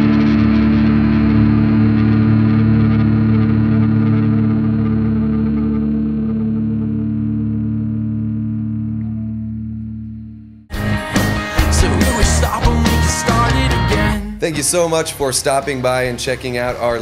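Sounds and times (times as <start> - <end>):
distorted guitar chord ringing: 0.0 - 15.3.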